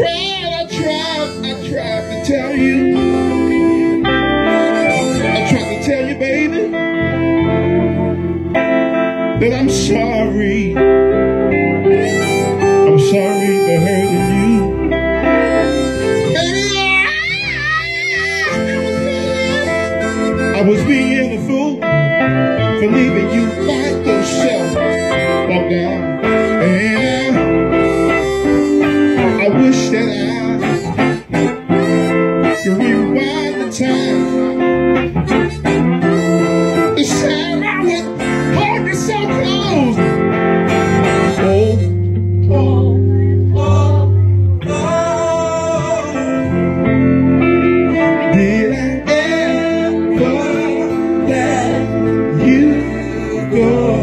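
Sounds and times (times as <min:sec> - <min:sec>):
acoustic guitars: 0:00.0 - 0:54.0
lead guitar melody: 0:00.0 - 0:54.0.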